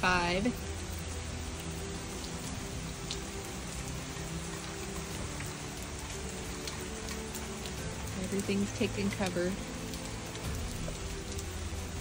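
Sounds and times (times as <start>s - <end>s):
rain falling on trees and lawn: 0.0s - 12.0s.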